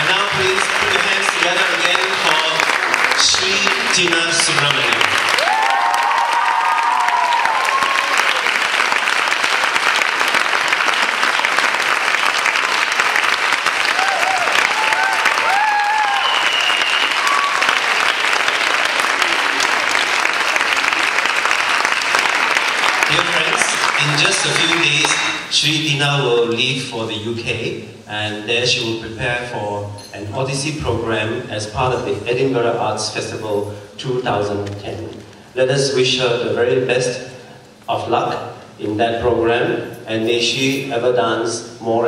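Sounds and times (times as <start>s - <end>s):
audience applauding: 0.0s - 25.5s.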